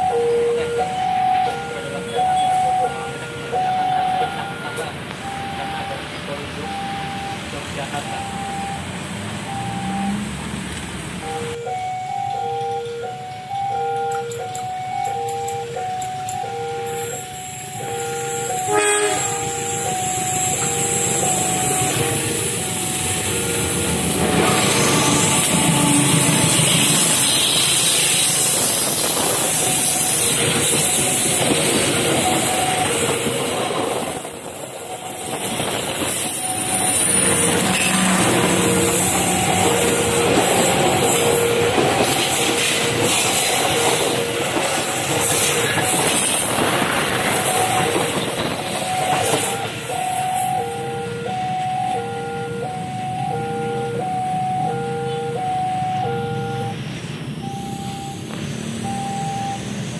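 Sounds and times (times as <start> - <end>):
train engine and wheels rumbling: 0.0 - 59.9
loud horn blast: 17.8 - 19.6, 21.6 - 28.3, 37.4 - 41.9.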